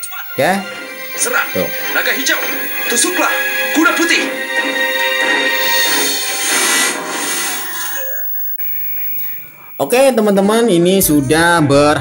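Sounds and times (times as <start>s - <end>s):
television loudspeaker broadcast sound: 0.0s - 12.0s.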